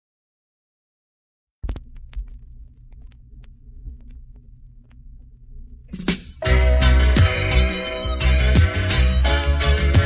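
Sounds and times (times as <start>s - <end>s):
vinyl crackles and pops: 1.6s - 6.4s
low hum and rumble: 1.6s - 6.5s.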